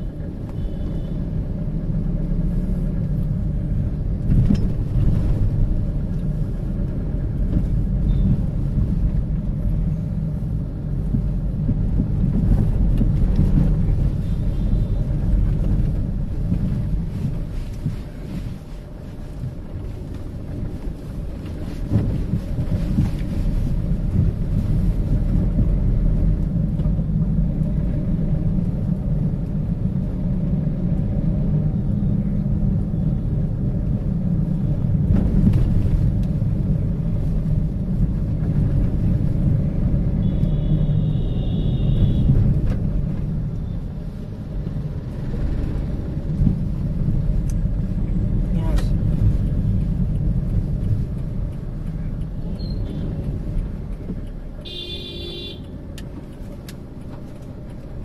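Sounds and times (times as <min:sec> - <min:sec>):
tyres on potholed road: 0:00.0 - 0:58.0
vehicle engine rumble: 0:00.0 - 0:58.0.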